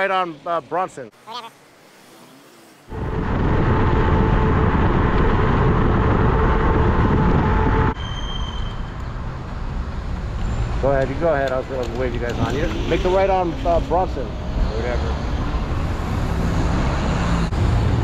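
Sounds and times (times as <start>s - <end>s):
road noise: 0.0s - 18.0s
wind rushing over microphone: 2.9s - 8.0s.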